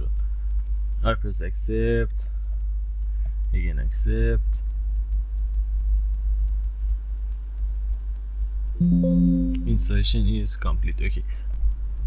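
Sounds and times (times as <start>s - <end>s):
faint ticks: 0.0s - 8.8s, 9.6s - 12.0s
steady low hum: 0.0s - 12.0s
computer alert chime: 8.8s - 9.8s.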